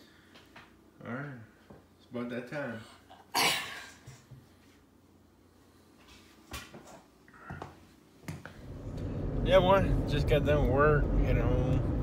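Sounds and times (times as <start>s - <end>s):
low rumble: 8.6s - 12.0s.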